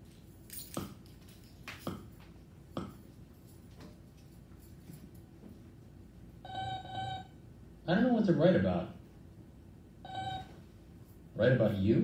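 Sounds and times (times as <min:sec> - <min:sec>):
short electronic beeps: 0:10.1 - 0:10.5.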